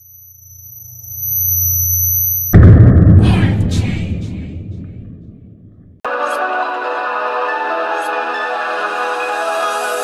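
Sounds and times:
thin high-pitched whine: 0.0s - 2.6s
deep synth bass tone: 2.6s - 6.0s.

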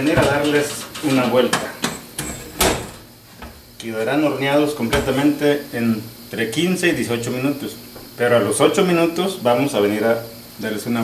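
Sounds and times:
metal oven door banging shut: 0.0s - 3.1s, 4.8s - 5.4s.

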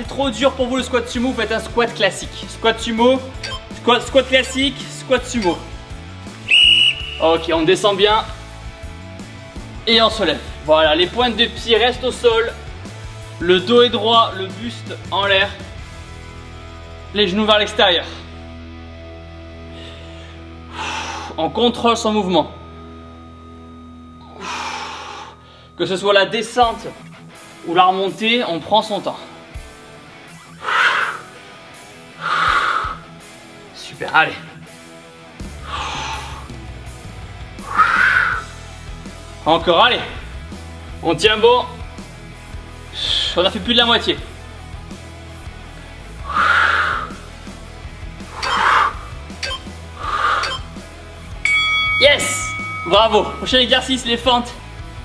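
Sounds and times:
background music with held notes: 0.0s - 55.0s
man breathing hard: 19.6s - 21.4s, 24.2s - 25.8s, 30.6s - 31.4s, 32.2s - 33.1s, 35.6s - 36.6s, 37.6s - 38.5s, 46.2s - 47.4s, 48.2s - 49.2s, 50.0s - 50.6s.

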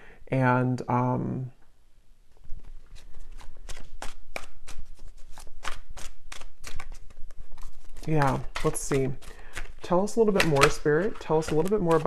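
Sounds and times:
cards being shuffled: 2.3s - 12.0s.

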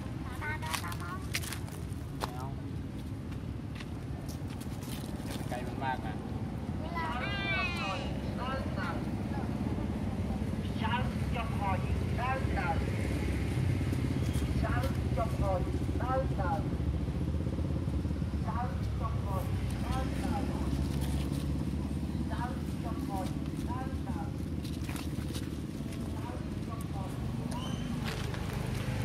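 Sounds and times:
infant monkey squealing: 27.5s - 28.0s.

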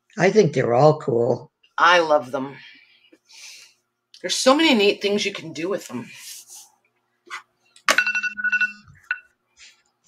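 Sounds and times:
electronic timer alarm chime: 8.0s - 9.3s.

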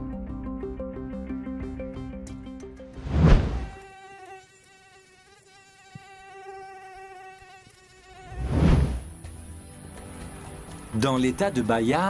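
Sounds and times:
loud whooshes: 3.0s - 3.7s, 8.4s - 9.1s
mosquito wingbeat whine: 3.1s - 9.4s.

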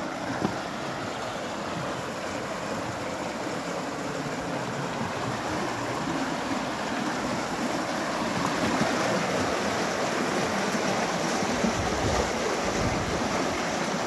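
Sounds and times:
river rushing over rapids: 0.0s - 14.0s.

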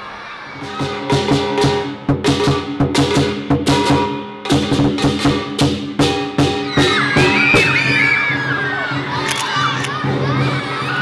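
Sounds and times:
young children shouting excitedly: 0.0s - 1.2s, 6.5s - 11.0s.

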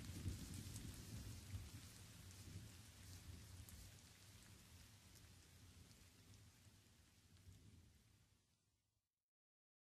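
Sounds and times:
low rumble of thunder: 0.0s - 8.1s
rain: 0.0s - 8.9s.

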